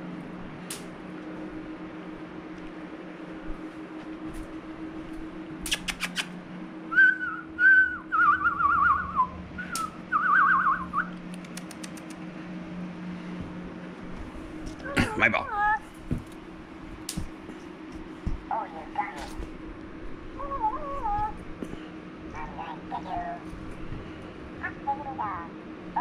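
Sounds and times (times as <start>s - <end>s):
steady low hum: 0.0s - 26.0s
quick clicks: 5.6s - 6.4s, 11.1s - 12.2s
person whistling: 6.9s - 11.1s.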